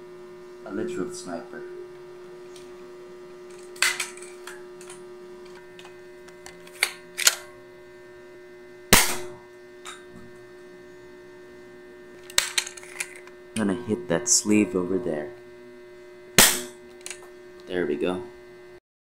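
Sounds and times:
electrical hum: 0:00.0 - 0:18.8
toy dart shot snap: 0:16.4 - 0:16.8.

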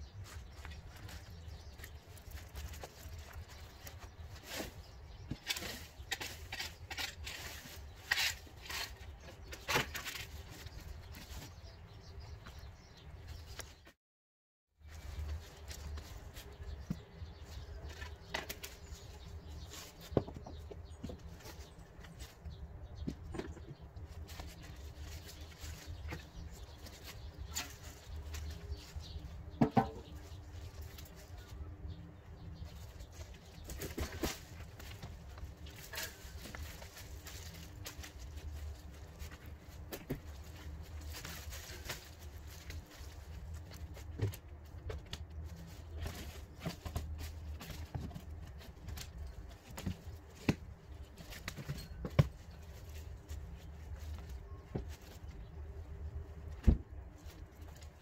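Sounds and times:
dry leaves rustling: 0:00.1 - 0:11.5, 0:14.8 - 0:20.2, 0:24.1 - 0:31.7, 0:32.4 - 0:56.6.

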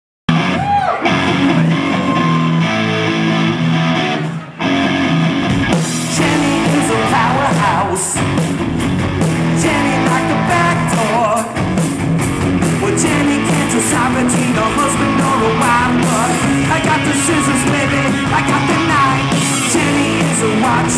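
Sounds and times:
electric guitars and bass: 0:00.3 - 0:20.9
drums with steady cymbal beat: 0:05.5 - 0:20.9.

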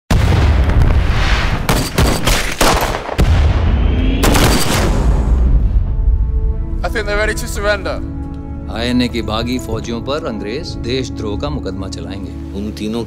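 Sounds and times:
gunfire blasts: 0:00.1 - 0:05.6
explosions: 0:00.1 - 0:06.4.

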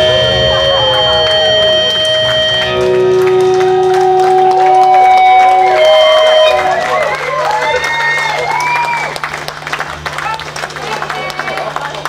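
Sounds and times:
live rock band playing: 0:00.0 - 0:07.1
electric guitar sustained notes: 0:00.0 - 0:10.0.

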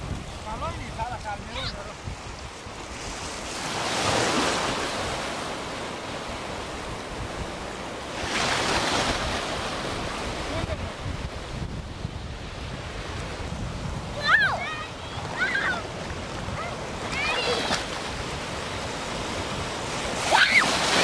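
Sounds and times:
wind buffeting microphone: 0:00.0 - 0:04.4, 0:06.4 - 0:21.0
ocean waves breaking: 0:00.0 - 0:21.0.

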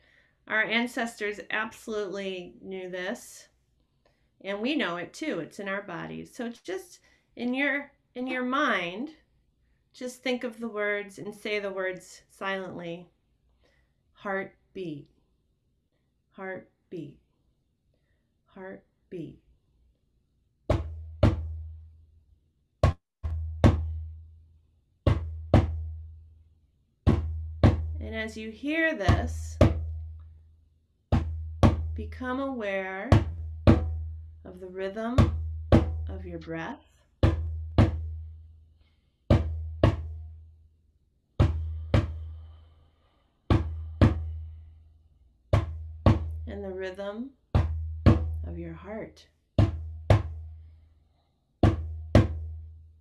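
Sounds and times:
djembe double beats: 0:20.7 - 0:21.7, 0:22.8 - 0:24.2, 0:25.1 - 0:26.0, 0:27.1 - 0:28.0, 0:31.1 - 0:32.0, 0:33.2 - 0:34.2, 0:35.2 - 0:36.1, 0:37.2 - 0:38.3, 0:39.3 - 0:40.3, 0:41.4 - 0:42.5, 0:43.5 - 0:44.4, 0:45.6 - 0:46.4, 0:47.6 - 0:48.4, 0:49.6 - 0:50.4, 0:51.6 - 0:52.6.

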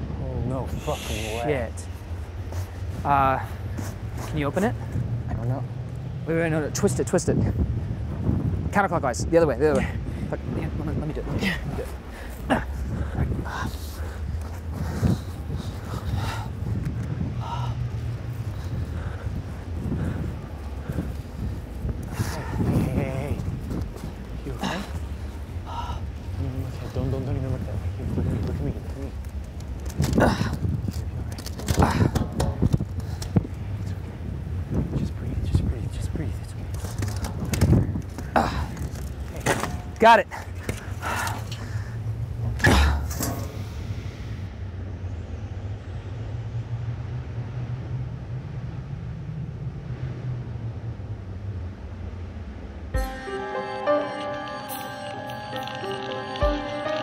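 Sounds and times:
low wind rumble on microphone: 0:00.0 - 0:53.0
short bits of voice: 0:00.7 - 0:01.5.

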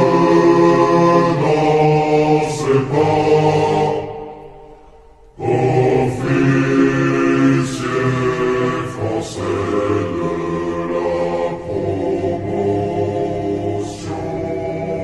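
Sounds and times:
choir chanting with reverb: 0:00.0 - 0:15.0.

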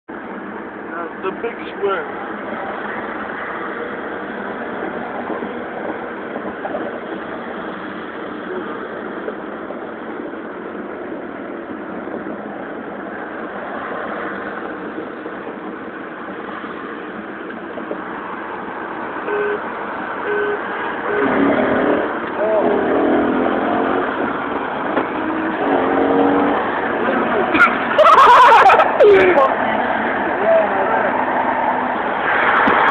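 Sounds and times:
cars driving: 0:00.1 - 0:32.9
brief tones: 0:19.3 - 0:19.6, 0:20.2 - 0:21.4.

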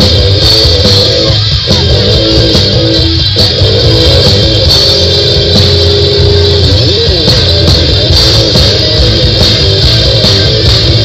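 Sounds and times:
electric guitar bending long note: 0:00.0 - 0:11.0
rock band playing live: 0:00.0 - 0:11.0.

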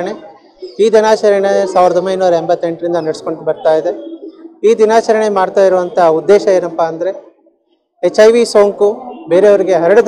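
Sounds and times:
man talking: 0:00.0 - 0:07.4, 0:08.0 - 0:10.0.

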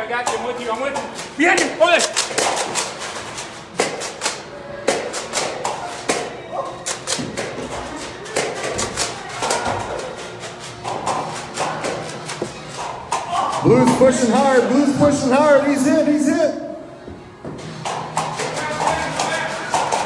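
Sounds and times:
toy blasters snapping and clicking: 0:00.3 - 0:09.7
people shouting: 0:13.1 - 0:14.6.

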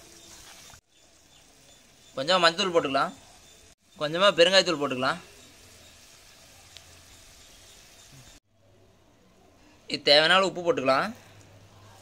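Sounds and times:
gravy simmering and sizzling: 0:00.0 - 0:08.5.

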